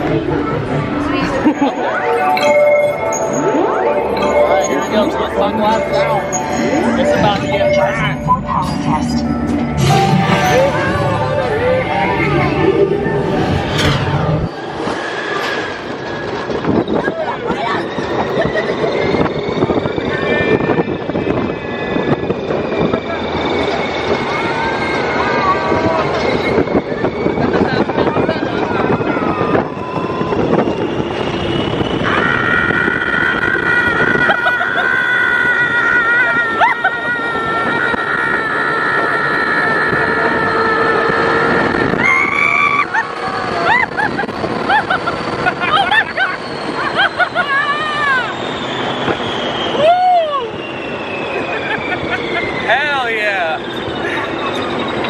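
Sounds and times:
high vehicle whine: 0.0s - 55.0s
wind rushing over microphone: 2.4s - 55.0s
riders screaming and whooping: 8.4s - 55.0s.

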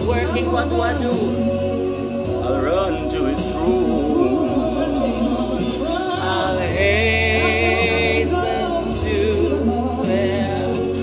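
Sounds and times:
choir singing gospel song: 0.0s - 11.0s
steady bass line: 0.0s - 11.0s.

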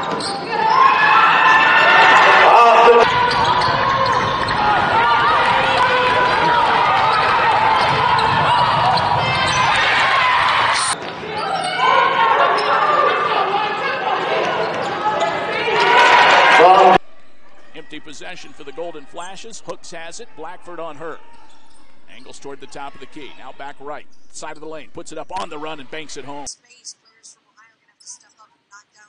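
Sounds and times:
players calling out: 0.0s - 26.5s
basketball dribbling: 3.0s - 10.2s.

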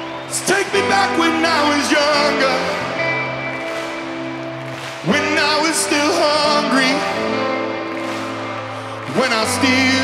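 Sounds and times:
rock band held chord: 0.0s - 10.0s.

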